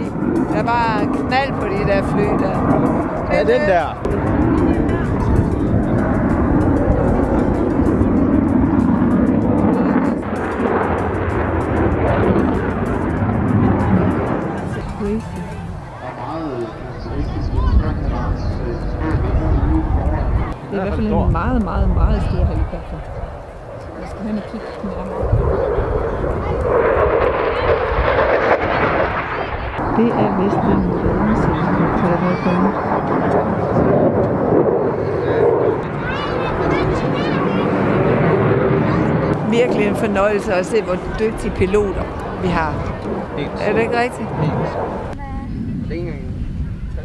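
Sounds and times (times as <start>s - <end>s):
helicopter rotor and engine: 0.0s - 45.8s.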